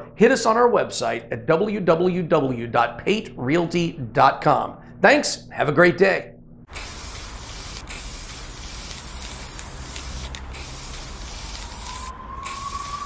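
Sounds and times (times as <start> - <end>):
spray paint can hissing: 6.7 - 13.0
faint rising whine: 11.4 - 13.0.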